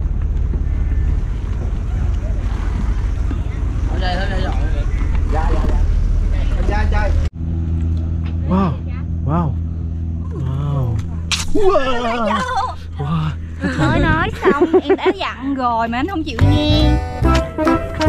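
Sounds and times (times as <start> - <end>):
steady low hum: 0.0 - 17.3
boat engine rumble: 0.0 - 18.0
voices: 8.2 - 17.0.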